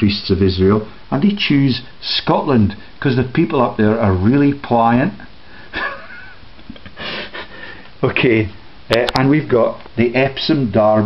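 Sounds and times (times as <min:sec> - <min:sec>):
person sniffing: 0:06.9 - 0:07.9.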